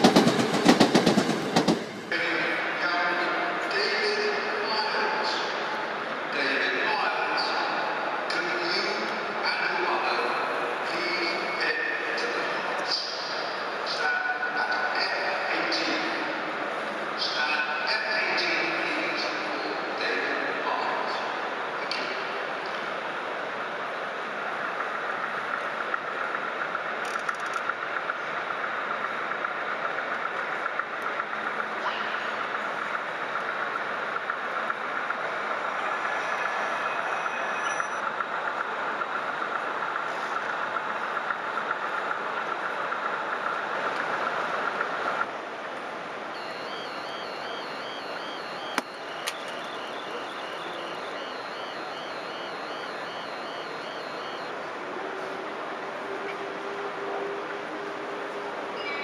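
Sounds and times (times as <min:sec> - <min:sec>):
model trains running: 0:00.0 - 0:59.0
two-tone warbling crossing alarm: 0:46.4 - 0:54.8
sharp clicks: 0:48.7 - 0:49.8.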